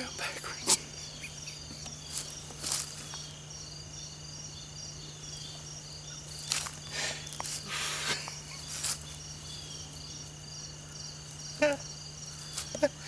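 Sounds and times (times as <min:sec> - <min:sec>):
insects chirping: 0:00.0 - 0:13.0.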